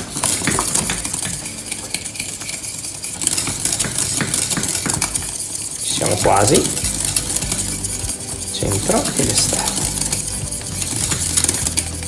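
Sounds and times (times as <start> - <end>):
whisk scraping a saucepan: 0.0 - 12.0.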